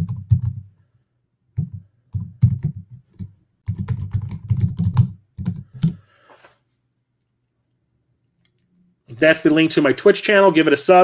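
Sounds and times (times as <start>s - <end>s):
computer keyboard typing: 0.0s - 0.6s, 1.6s - 6.0s.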